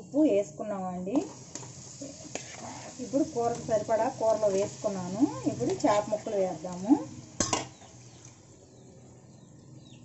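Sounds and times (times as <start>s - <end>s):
oil sizzling in pan: 0.6s - 8.7s.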